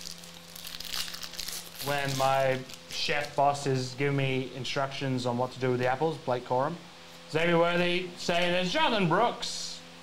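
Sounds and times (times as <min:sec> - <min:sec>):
foil wrapper crinkling and tearing: 0:00.0 - 0:03.6.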